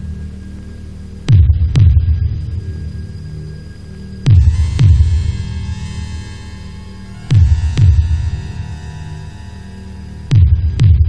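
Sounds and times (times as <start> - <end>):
droning music bed: 0.0 - 11.0
deep heartbeat thumps: 1.3 - 2.6, 4.3 - 5.9, 7.2 - 8.8, 10.2 - 11.0.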